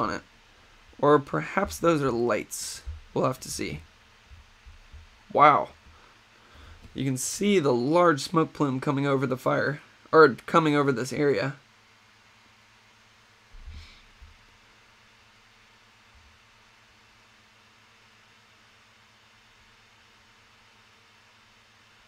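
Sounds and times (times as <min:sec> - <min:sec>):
steady hiss: 0:00.0 - 0:22.0
soft low bump: 0:02.7 - 0:03.6, 0:04.2 - 0:06.0.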